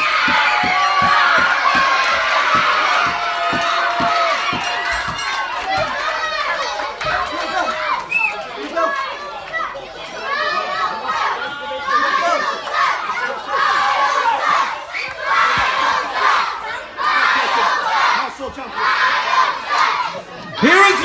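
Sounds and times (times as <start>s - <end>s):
crowd shouting and yelling: 0.0s - 21.0s.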